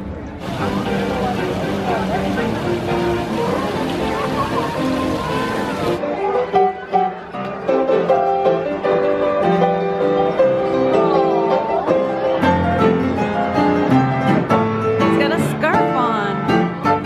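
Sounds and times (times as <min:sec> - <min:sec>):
crowd chatter: 0:00.0 - 0:17.0
music: 0:00.0 - 0:17.0
piano notes and chords: 0:00.0 - 0:17.0.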